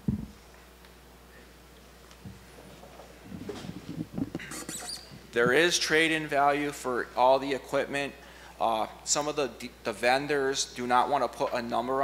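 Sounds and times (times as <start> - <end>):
scratchy knocks on microphone: 3.3 - 5.6.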